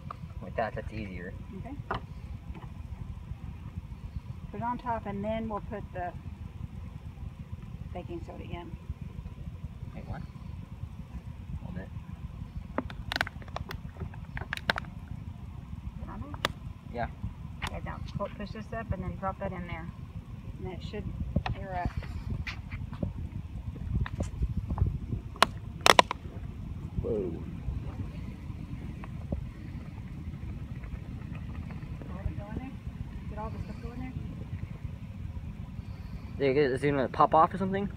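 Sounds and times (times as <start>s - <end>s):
wind noise on microphone: 11.0s - 37.9s.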